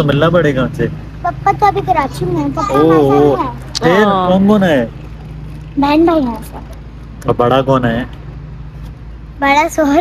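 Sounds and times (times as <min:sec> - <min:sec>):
girl speaking: 0:01.2 - 0:03.8, 0:05.8 - 0:06.8, 0:09.4 - 0:10.0.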